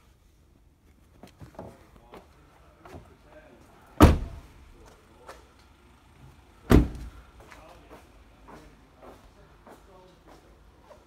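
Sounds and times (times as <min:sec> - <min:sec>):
car door slamming: 0:04.0 - 0:04.5, 0:06.6 - 0:07.2.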